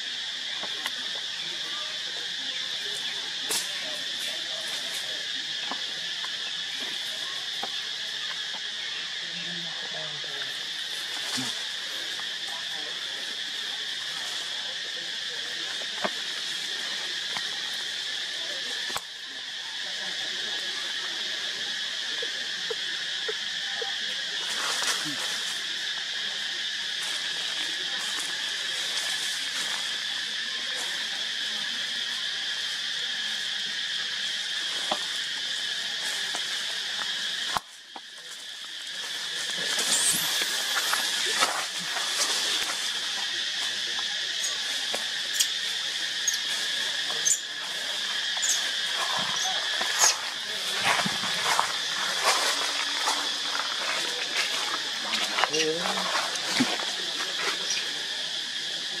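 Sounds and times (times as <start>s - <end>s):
insect chorus drone: 0.0s - 59.0s.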